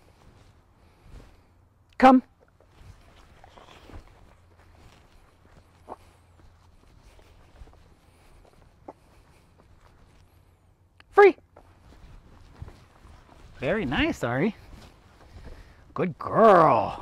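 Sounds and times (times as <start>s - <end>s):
footsteps on grass: 0.0s - 1.6s, 2.5s - 10.9s, 11.5s - 17.0s.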